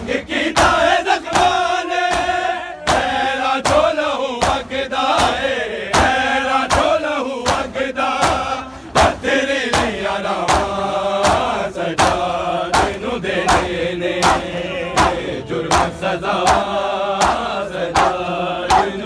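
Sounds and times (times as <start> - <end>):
men chanting in unison: 0.0 - 19.0
rhythmic chest-beating: 0.0 - 19.0.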